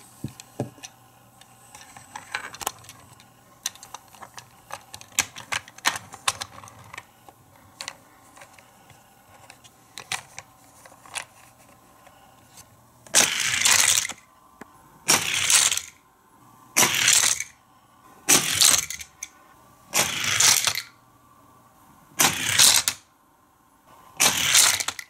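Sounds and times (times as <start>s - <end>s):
toy cars rolling down plastic track: 13.1s - 14.2s, 15.1s - 16.0s, 16.8s - 17.6s, 20.0s - 20.9s, 22.2s - 23.0s, 24.2s - 25.0s.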